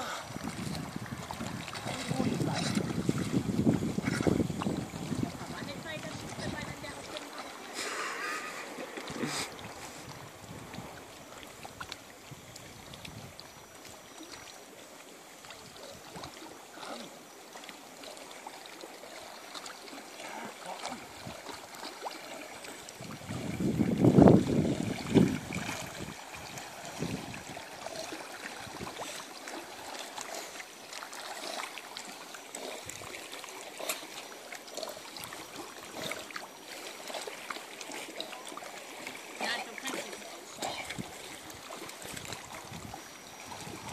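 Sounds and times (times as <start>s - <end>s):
water splashing and lapping: 0.0s - 43.9s.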